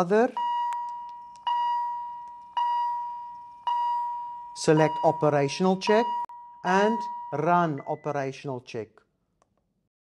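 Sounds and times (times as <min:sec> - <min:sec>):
defibrillator monitor beeping: 0:00.3 - 0:08.2.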